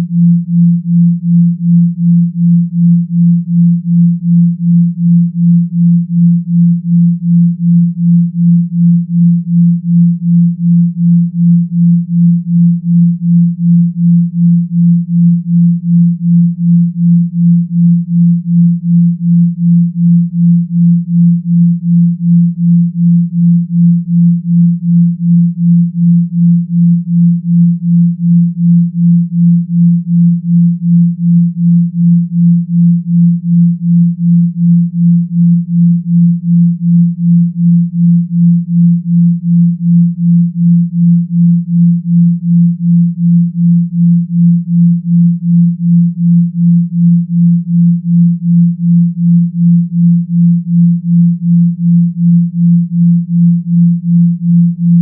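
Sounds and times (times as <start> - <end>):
low pulsing pure tone: 0.0 - 55.0.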